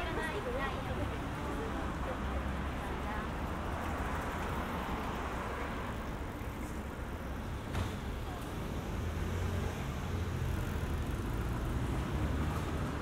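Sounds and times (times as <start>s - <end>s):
low rumble of street traffic: 0.0s - 13.0s.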